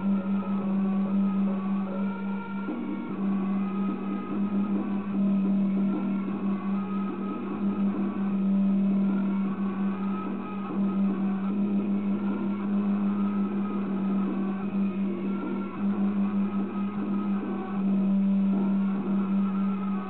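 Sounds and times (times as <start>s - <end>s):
loud steady low hum: 0.0s - 20.0s.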